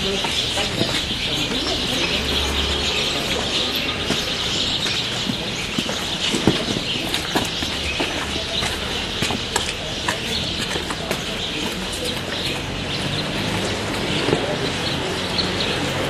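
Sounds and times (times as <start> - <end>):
birds chirping chorus: 0.0 - 16.0.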